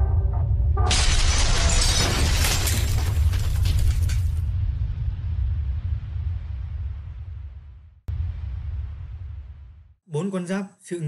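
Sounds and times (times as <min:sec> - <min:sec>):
deep rumble: 0:00.0 - 0:10.0
crash of shattering debris: 0:00.9 - 0:04.5.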